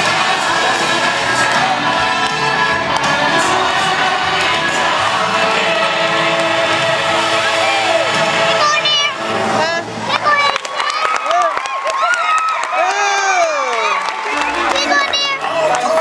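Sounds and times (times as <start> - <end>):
arena music over loudspeakers: 0.0 - 16.0
crowd noise: 0.0 - 16.0
scattered cheering: 0.0 - 16.0.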